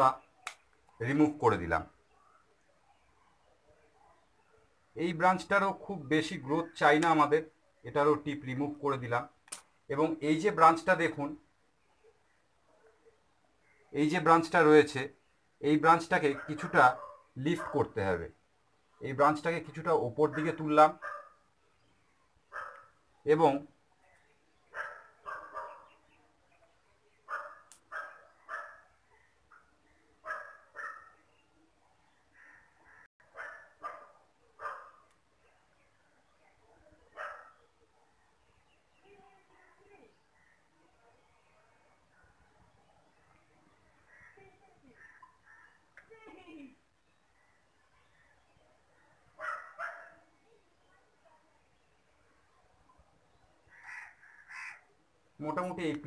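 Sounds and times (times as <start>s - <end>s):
dog barking: 16.2s - 18.0s, 20.2s - 21.4s, 22.5s - 23.0s, 24.7s - 26.0s, 27.2s - 31.2s, 33.3s - 35.1s, 37.1s - 38.1s, 49.4s - 50.3s
faint short bird calls: 53.6s - 54.9s.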